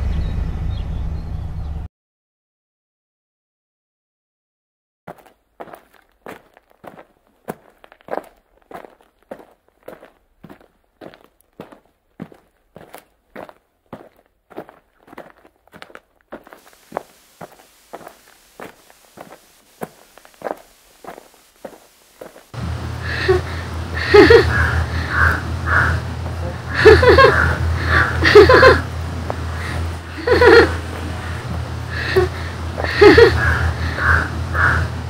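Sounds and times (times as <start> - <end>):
low hum: 0.0 - 1.9, 16.7 - 35.0
footsteps: 5.1 - 24.5, 26.1 - 27.3, 28.3 - 33.3
faint hiss: 16.5 - 23.9.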